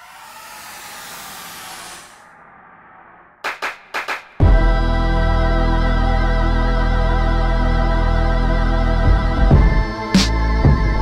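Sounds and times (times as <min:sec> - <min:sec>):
rushing white noise effect: 0:00.0 - 0:03.8.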